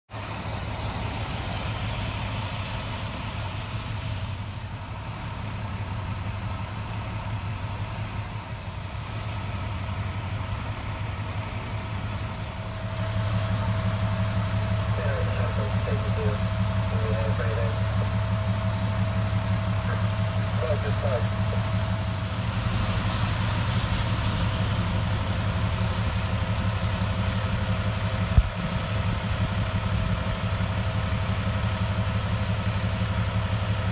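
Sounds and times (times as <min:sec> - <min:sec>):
diesel engines idling: 0:00.1 - 0:33.9
faint steady whine: 0:00.4 - 0:33.9
faint voices: 0:13.4 - 0:22.0
hiss: 0:22.2 - 0:26.4.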